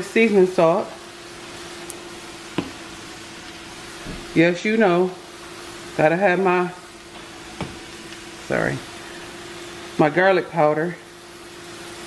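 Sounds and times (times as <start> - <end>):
steady kitchen hiss: 0.0 - 12.0.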